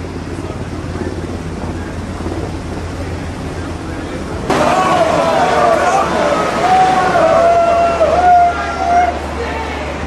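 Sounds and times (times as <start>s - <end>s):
helicopter hovering: 0.0s - 10.0s.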